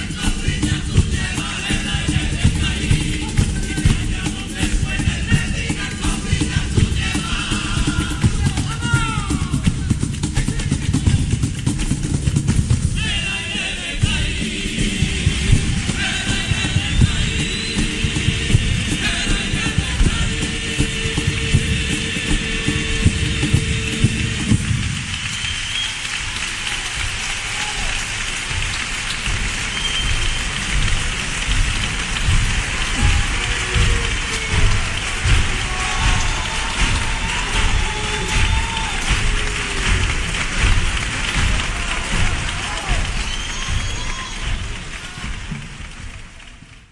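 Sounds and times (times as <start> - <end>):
male choir singing: 0.0 - 9.6, 13.0 - 24.6, 32.7 - 40.2
audience applause and cheers: 0.0 - 46.9.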